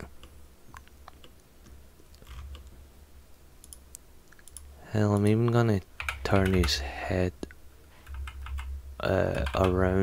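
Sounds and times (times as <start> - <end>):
computer mouse and keyboard clicks: 0.0 - 2.7, 3.6 - 6.8, 8.0 - 8.7, 9.3 - 9.8
low steady hum: 0.0 - 10.0.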